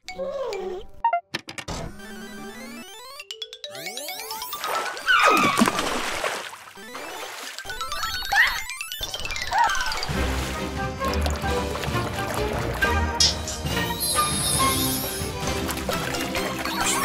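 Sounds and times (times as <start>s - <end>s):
water splash: 4.6s - 7.8s, 9.9s - 17.0s
background music: 9.0s - 17.0s.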